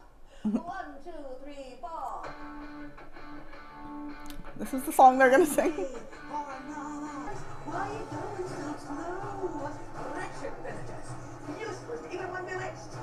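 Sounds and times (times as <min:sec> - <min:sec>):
person laughing: 0:00.4 - 0:00.6, 0:05.4 - 0:06.2.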